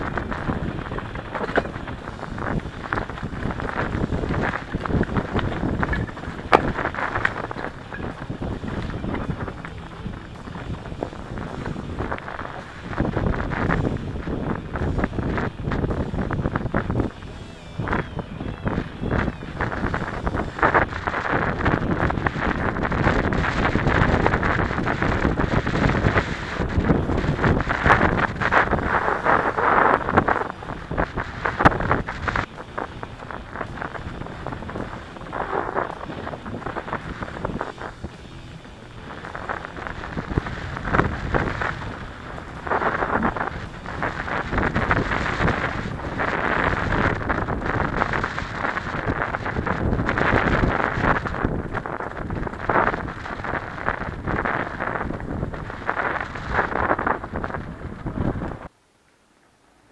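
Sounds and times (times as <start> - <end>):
bike knocks and rattles: 0.0 - 9.9
wind buffeting microphone: 0.0 - 58.7.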